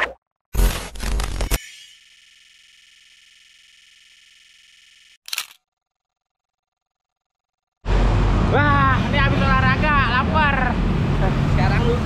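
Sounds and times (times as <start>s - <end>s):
sharp click: 5.2s - 5.6s.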